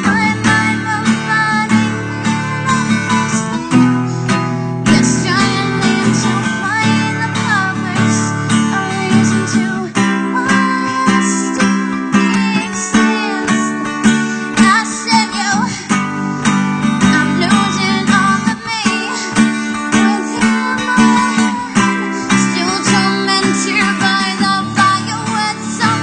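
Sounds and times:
person singing wordlessly: 0.0s - 3.9s, 4.9s - 13.9s, 14.6s - 15.8s, 17.0s - 26.0s
acoustic guitar strumming: 0.0s - 26.0s.

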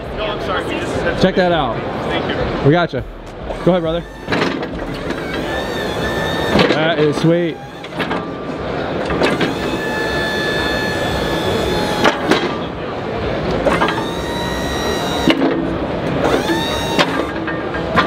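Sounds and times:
hydraulic power unit whining: 3.0s - 18.0s.

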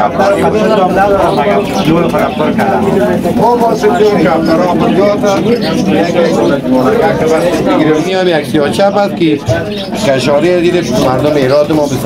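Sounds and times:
pigeons cooing: 0.0s - 8.8s
men's voices: 0.0s - 12.0s.

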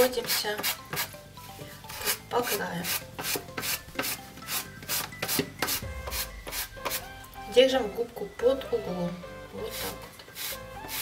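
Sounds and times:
sanding sponge rasping: 1.9s - 7.0s, 9.7s - 11.0s.

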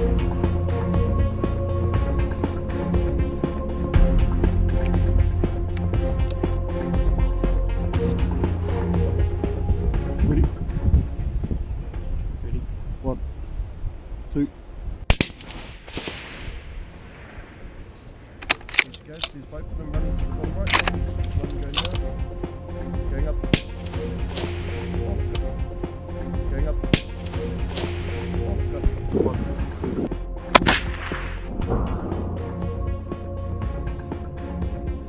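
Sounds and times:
background music: 0.0s - 12.6s, 18.4s - 35.0s
rifle shots with echo: 15.1s - 17.6s, 23.5s - 24.8s, 26.9s - 28.2s, 30.5s - 32.3s.

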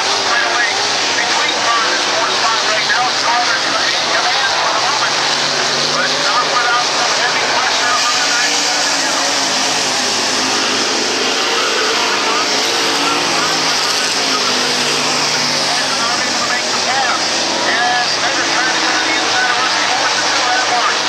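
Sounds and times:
race car engines: 0.0s - 21.0s
voices: 0.0s - 21.0s.

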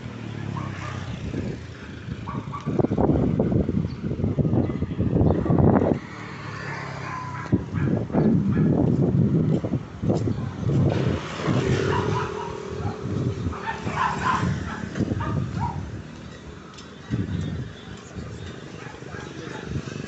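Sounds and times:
motorcycle engines running: 0.0s - 20.0s.

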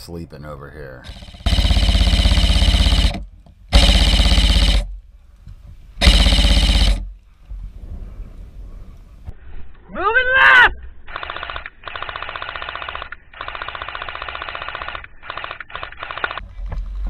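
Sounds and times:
airsoft rifle full-auto bursts: 1.0s - 4.9s, 6.0s - 7.1s, 11.1s - 16.4s.

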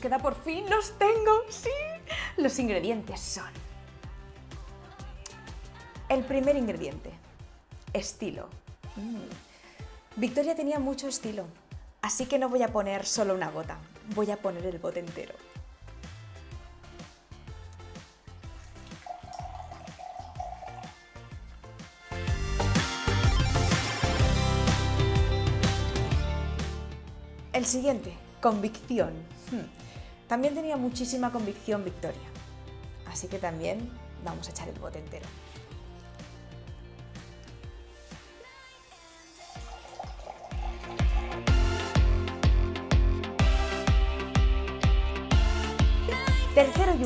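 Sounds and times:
background music: 0.0s - 47.0s
liquid pouring into a glass: 18.6s - 21.3s, 38.9s - 41.9s.

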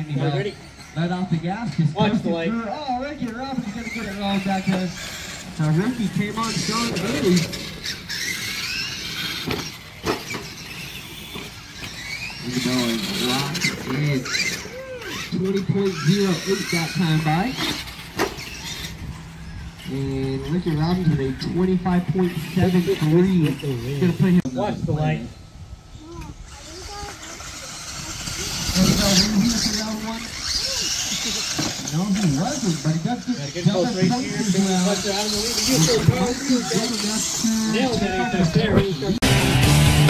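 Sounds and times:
toy truck electric motors whining: 0.0s - 24.5s, 25.2s - 40.0s.

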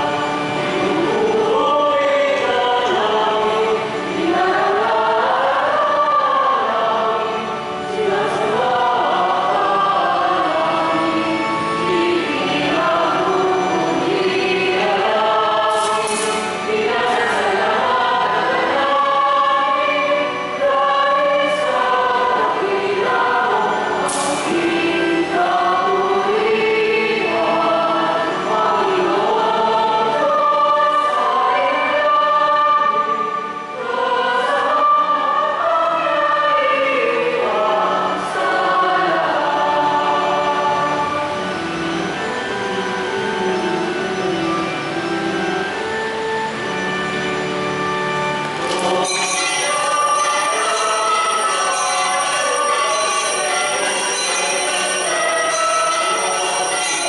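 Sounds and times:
choir singing a hymn: 0.0s - 57.0s.

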